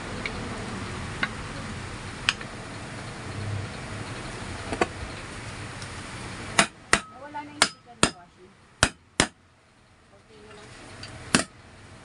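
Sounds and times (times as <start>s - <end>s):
hammer tapping on metal: 6.6s - 9.4s, 11.3s - 11.6s.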